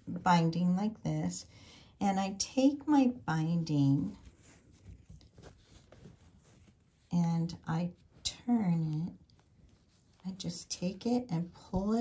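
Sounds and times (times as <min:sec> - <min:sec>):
soft rustles of fabric: 0:00.0 - 0:12.0.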